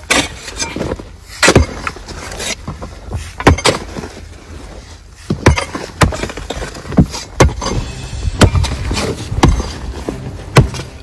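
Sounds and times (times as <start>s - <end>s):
digging tool striking stony ground: 0.0s - 4.2s, 5.2s - 11.0s.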